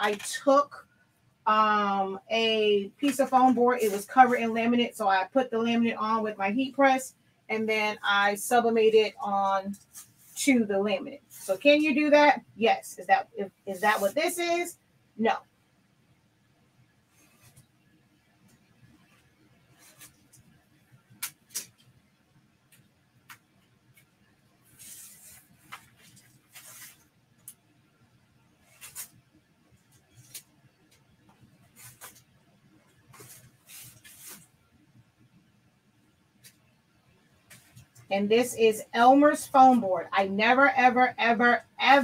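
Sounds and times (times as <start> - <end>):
knife scratching and scraping: 19.7 - 20.4, 24.7 - 27.0, 28.6 - 29.2, 31.7 - 32.3.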